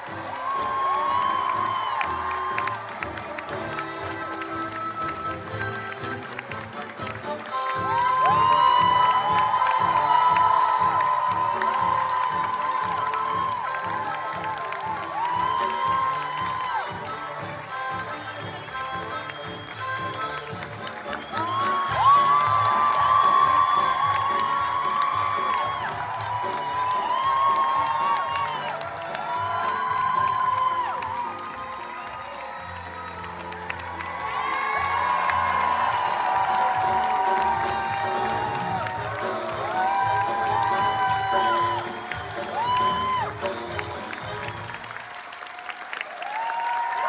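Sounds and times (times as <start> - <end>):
orchestra music: 0.0 - 45.1
audience cheering and applauding: 0.0 - 47.0
high whoops: 0.2 - 2.9, 7.8 - 17.1, 21.1 - 43.6, 45.4 - 47.0.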